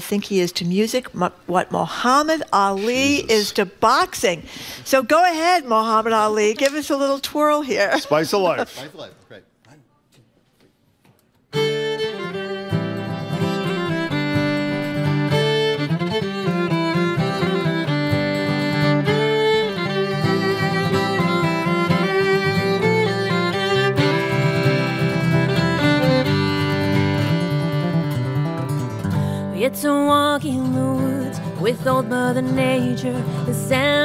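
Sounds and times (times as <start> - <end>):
acoustic guitar accompaniment: 2.6 - 3.6, 11.5 - 34.0
bowed fiddle melody: 11.5 - 34.0.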